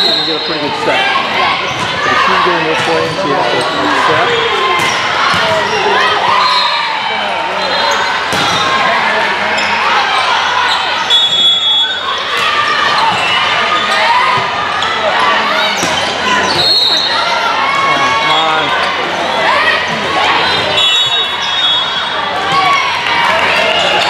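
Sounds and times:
chatter and calls: 0.0 - 24.0.

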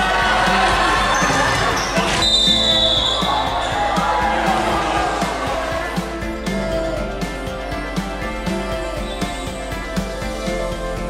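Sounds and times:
crowd of voices: 0.0 - 11.0.

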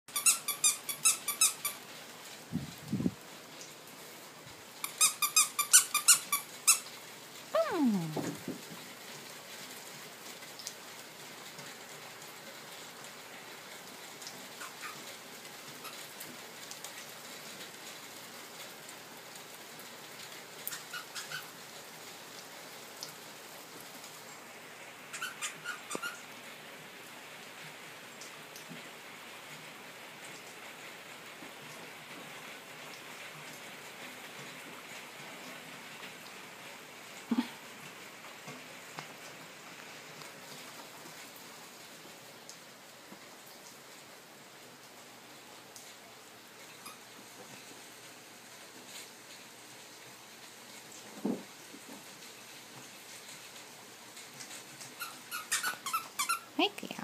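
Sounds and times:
squeaky dog toy squeaking: 0.1 - 1.8, 4.9 - 6.9, 25.2 - 26.2, 55.0 - 56.5
faint steady hiss: 0.1 - 57.0.

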